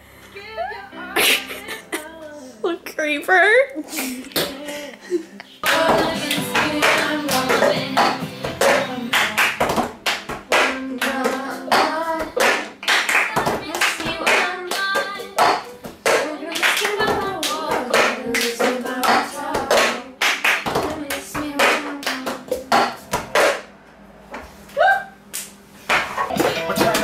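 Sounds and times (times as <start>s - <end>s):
person singing: 0.2s - 2.7s, 3.9s - 9.7s, 10.5s - 20.2s, 26.3s - 27.0s
hand claps: 5.6s - 23.6s, 25.3s - 27.0s.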